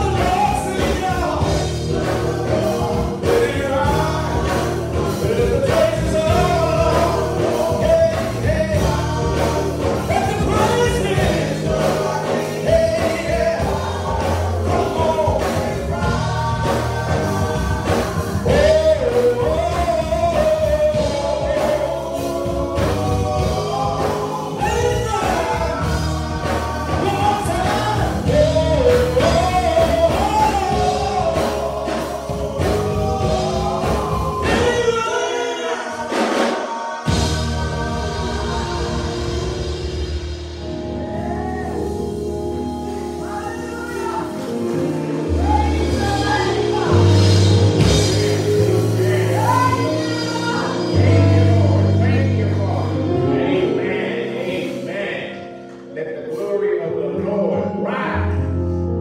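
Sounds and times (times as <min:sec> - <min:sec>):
instrumental backing with bass and beat: 0:00.0 - 0:56.5
gospel singing: 0:00.0 - 0:59.0.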